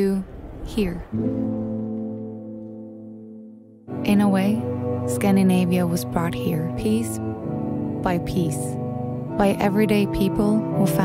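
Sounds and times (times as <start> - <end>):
sustained low music chord: 1.0 - 11.0.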